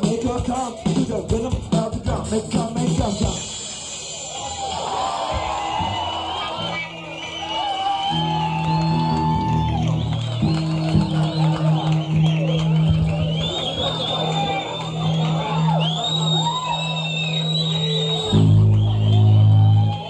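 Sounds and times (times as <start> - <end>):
bass guitar: 0.0 - 3.5, 8.0 - 20.0
electric guitar lines: 5.4 - 20.0.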